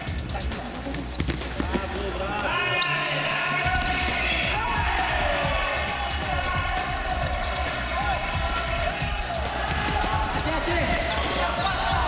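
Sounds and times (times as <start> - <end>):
ball bouncing on hard floor: 1.1 - 1.9.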